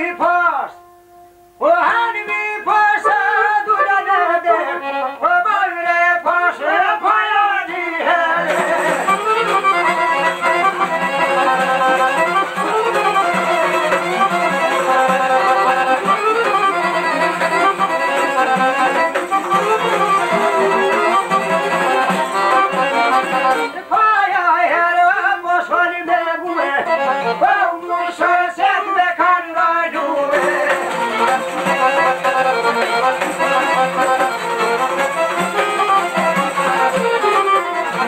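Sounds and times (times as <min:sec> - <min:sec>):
accordion: 0:01.0 - 0:38.0
violin: 0:03.2 - 0:06.0, 0:06.6 - 0:24.6, 0:25.7 - 0:29.1, 0:30.0 - 0:38.0
plucked lutes: 0:08.4 - 0:23.8, 0:30.3 - 0:38.0.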